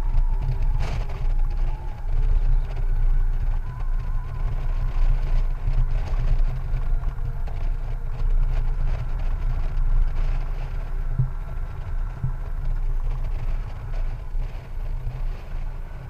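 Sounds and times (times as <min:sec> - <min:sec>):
faint motorcycle engine: 0:00.0 - 0:16.0
road noise: 0:00.0 - 0:16.0
wind rumbling on microphone: 0:00.0 - 0:16.0.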